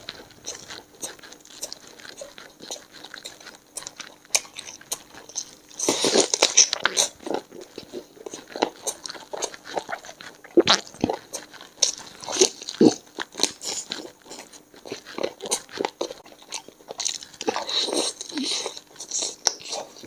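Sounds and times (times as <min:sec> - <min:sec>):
chewing and biting: 0:00.0 - 0:20.0.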